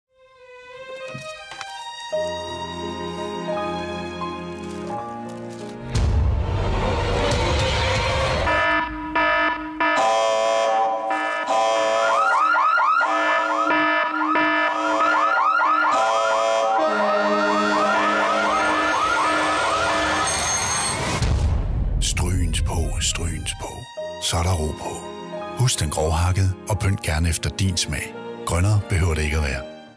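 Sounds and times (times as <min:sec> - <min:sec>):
rising warble alarm: 0:08.4 - 0:21.2.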